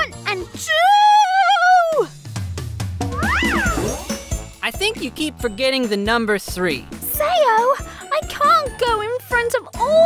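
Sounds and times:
children's background music: 0:00.0 - 0:10.0
descending cartoon tone: 0:03.1 - 0:04.0.

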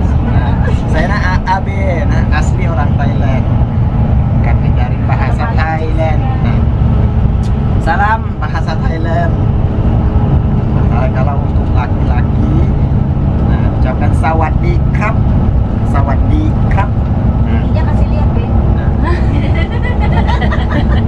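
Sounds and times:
bus engine rumble: 0:00.0 - 0:21.0
man speaking: 0:00.2 - 0:03.5, 0:04.4 - 0:06.7, 0:07.8 - 0:09.4, 0:10.8 - 0:12.8, 0:13.4 - 0:15.2, 0:15.8 - 0:17.8.

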